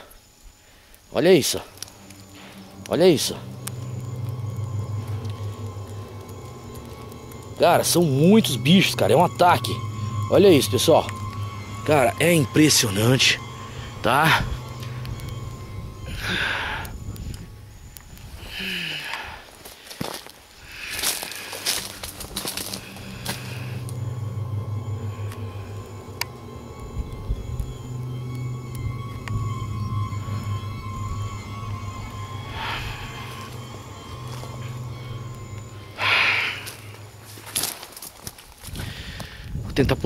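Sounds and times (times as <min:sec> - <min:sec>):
low music drone: 0:01.1 - 0:19.6, 0:20.8 - 0:40.0.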